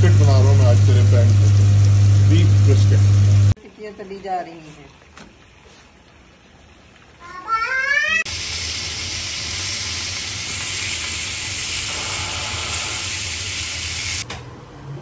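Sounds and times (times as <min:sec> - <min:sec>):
chicken sizzling on grill: 0:00.0 - 0:03.5, 0:07.7 - 0:14.2.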